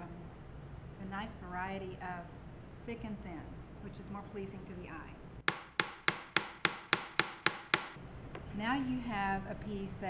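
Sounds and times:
hammer tapping on metal: 5.5 - 8.0.

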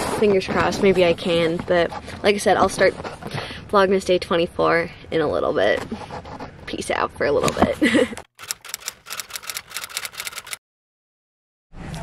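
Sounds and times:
rapid sharp clicks: 8.4 - 10.6.

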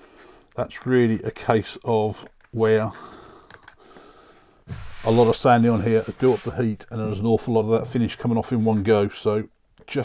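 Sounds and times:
person breathing: 0.0 - 0.6, 2.9 - 5.1
fingers rubbing sandpaper: 4.7 - 6.8.

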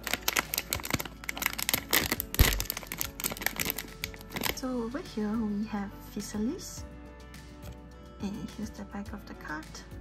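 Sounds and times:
foil bag crinkling and tearing: 0.0 - 4.6.

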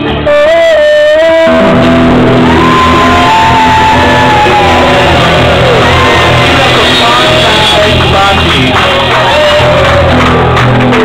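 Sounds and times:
live rock band playing: 0.0 - 11.0
long held high note: 0.4 - 10.2.

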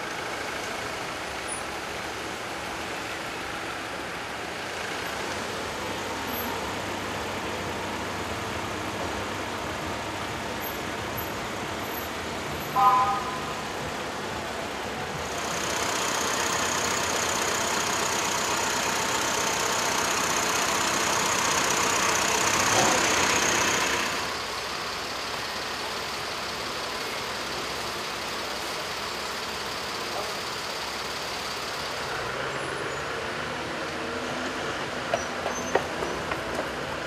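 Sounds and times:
traffic noise: 0.0 - 37.0
vehicle engine running: 0.0 - 37.0.

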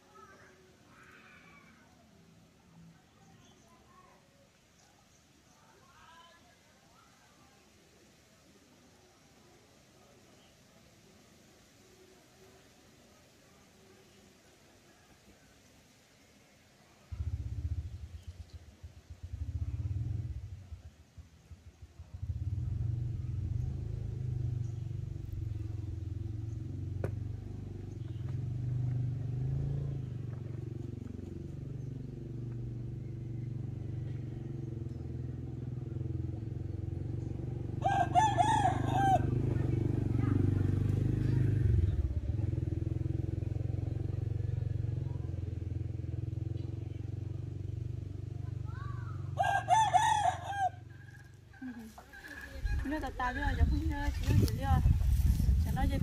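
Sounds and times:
low engine hum: 17.1 - 56.0
rooster crowing: 37.8 - 39.4, 49.4 - 52.8.

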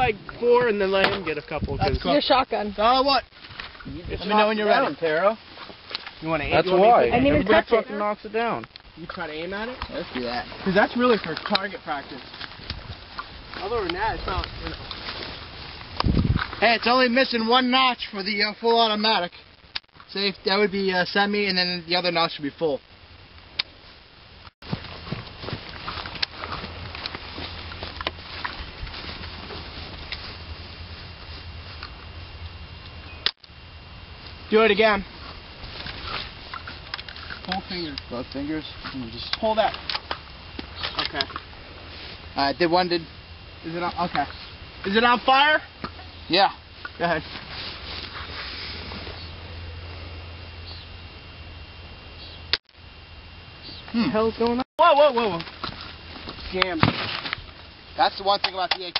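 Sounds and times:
wind buffeting microphone: 0.0 - 2.1, 12.6 - 16.6
sharp clicks: 19.7 - 20.0.

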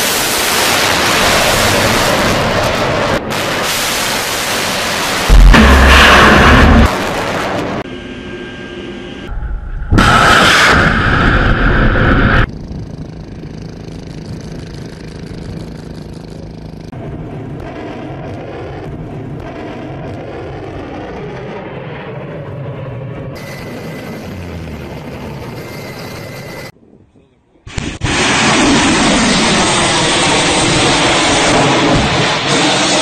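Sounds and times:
missile launch blast: 0.0 - 7.9, 9.7 - 12.5, 27.7 - 33.0
steady rushing noise: 0.0 - 22.6.

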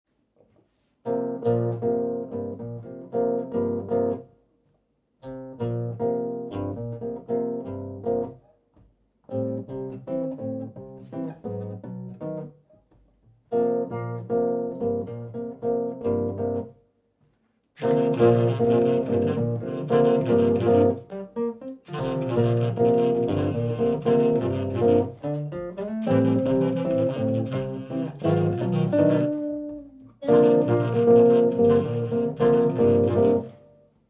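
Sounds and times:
nylon-string guitar jazz chords: 1.0 - 4.4, 5.2 - 8.4, 9.3 - 16.8, 17.8 - 34.0.

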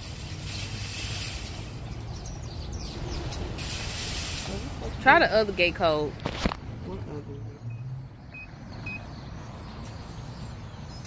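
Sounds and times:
keypad beeps: 7.7 - 9.1.

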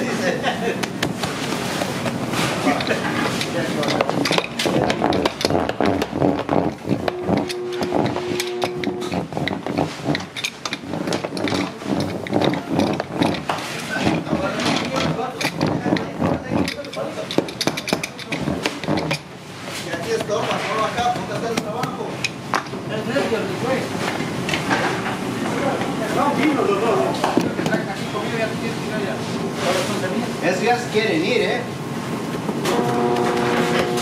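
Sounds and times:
knocks and clatter: 0.8 - 19.3
brief steady tone: 7.1 - 9.2, 32.7 - 34.0.

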